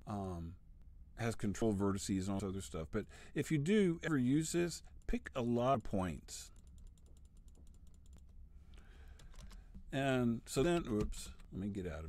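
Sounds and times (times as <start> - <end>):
computer mouse clicking: 6.6 - 8.4, 9.1 - 9.8.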